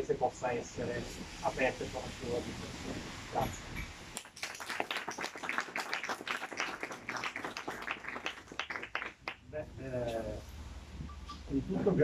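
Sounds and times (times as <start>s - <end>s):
audience applauding: 4.2s - 9.4s.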